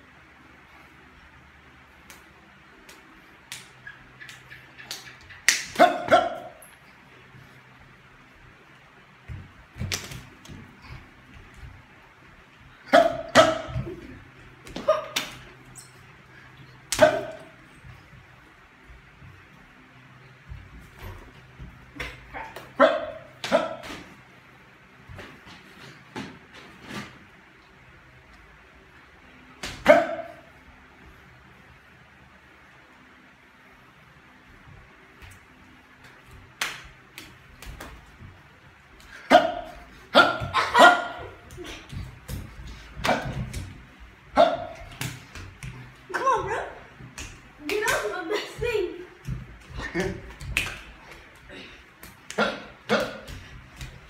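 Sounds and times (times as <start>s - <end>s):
slaps and shuffling: 1.8s - 28.5s, 29.5s - 31.5s, 34.3s - 54.0s
dog barking: 5.8s - 6.6s, 12.9s - 13.8s, 17.0s - 17.6s, 22.3s - 23.8s, 29.8s - 30.5s, 39.3s - 41.3s, 44.4s - 44.9s.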